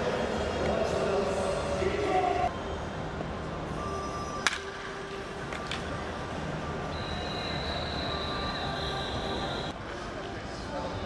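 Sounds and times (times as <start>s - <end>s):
stadium background noise: 0.0s - 11.0s
wooden bat hitting baseball: 4.4s - 5.9s.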